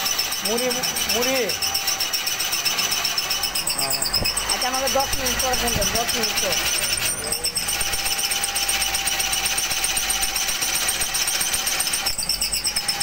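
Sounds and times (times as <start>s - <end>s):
drill bit cutting block: 0.0s - 13.0s
drill press motor: 0.0s - 13.0s.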